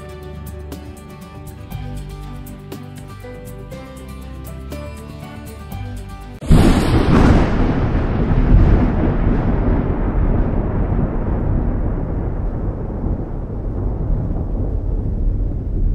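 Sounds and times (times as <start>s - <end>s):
heavy cinematic boom: 6.4s - 15.9s
steady low rumble: 6.5s - 15.9s.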